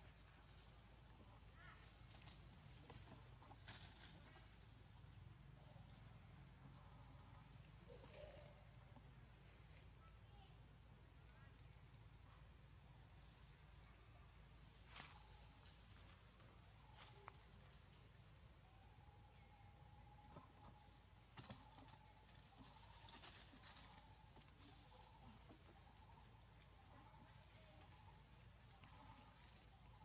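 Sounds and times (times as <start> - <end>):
faint bird chirps: 6.8 - 10.5, 13.5 - 30.0.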